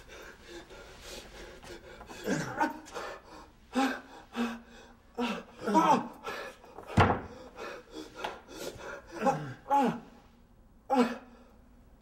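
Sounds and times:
person breathing heavily: 0.0 - 10.3
person moaning: 2.1 - 3.0, 3.7 - 6.4, 9.0 - 10.2, 10.9 - 11.5.

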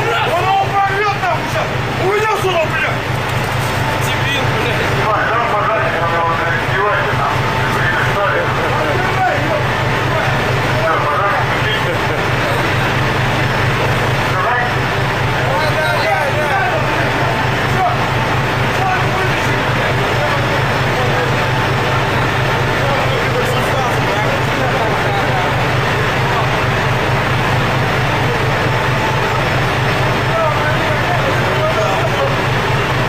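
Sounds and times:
boat engine drone: 0.0 - 33.0
indistinct voices: 0.0 - 33.0.

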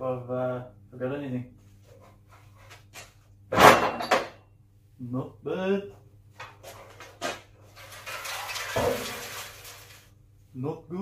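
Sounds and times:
metal scraping and rattling: 6.4 - 10.2.

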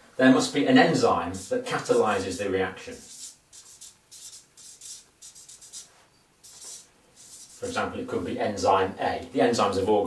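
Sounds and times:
marker pen scratching on paper: 1.3 - 2.2, 2.9 - 7.8.

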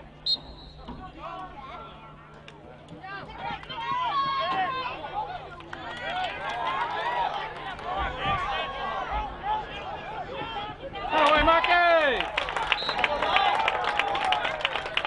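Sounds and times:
distant shouts and chatter: 0.0 - 15.0
sharp whistle blast: 0.2 - 0.9.

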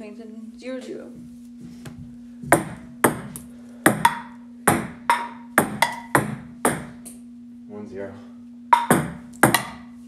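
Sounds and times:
ping pong ball clicking: 3.9 - 7.2, 8.7 - 9.9.

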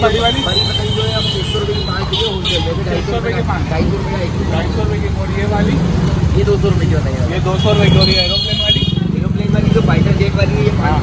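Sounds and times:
people talking: 0.0 - 11.0
street traffic: 0.0 - 11.0.

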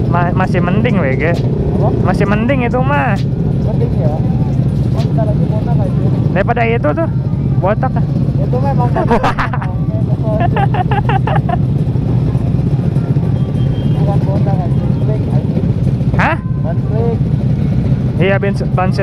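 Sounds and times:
motorcycle engines idling: 0.0 - 19.0.

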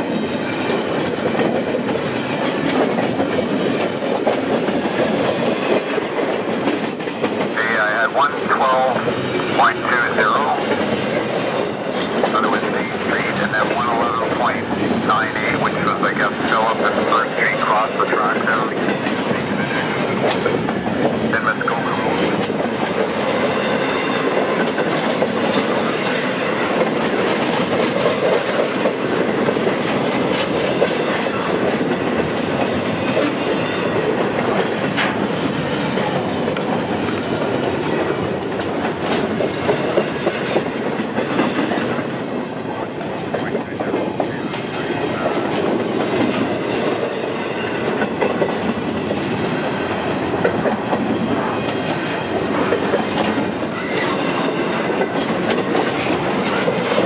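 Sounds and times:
wheels clicking over rail joints: 0.0 - 7.6, 22.1 - 42.4, 43.0 - 57.0
steel wheels rolling on rail: 0.0 - 57.0.

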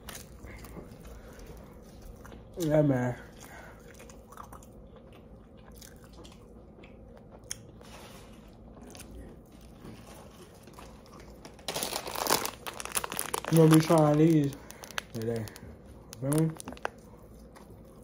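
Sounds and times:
person chewing food: 0.0 - 18.0
loud crinkling rustle: 9.8 - 15.6.

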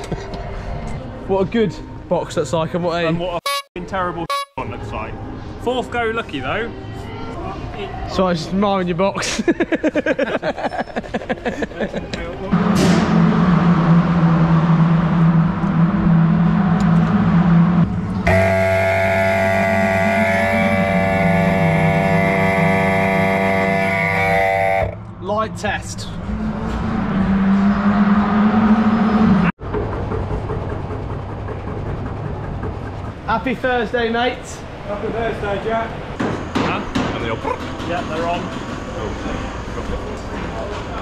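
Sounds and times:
people laughing: 9.2 - 12.5.

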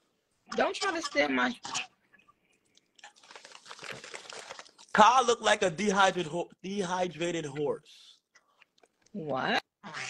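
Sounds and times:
crackling crunchy noise: 2.6 - 5.2.

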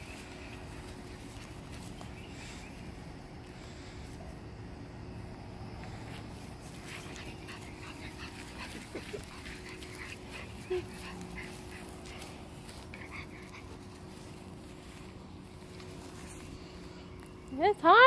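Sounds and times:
faint steady hum: 0.0 - 18.0
scuffling in grass: 0.0 - 18.0
puppy whimpering: 7.3 - 14.1.

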